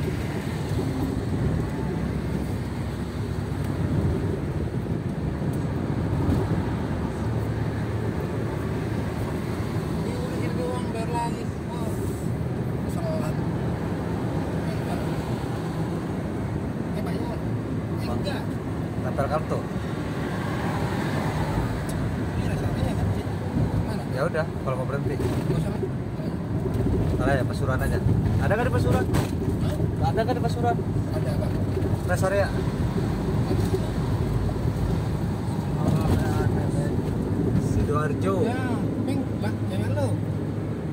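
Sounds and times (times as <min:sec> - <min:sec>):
car cabin road rumble: 0:00.0 - 0:40.9.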